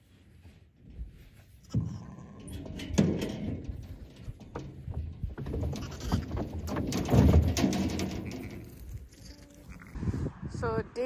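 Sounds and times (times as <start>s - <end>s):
knocks and rustling: 0.6s - 9.3s
lambs bleating: 5.8s - 6.3s, 8.2s - 10.0s
low rumble: 9.8s - 11.0s.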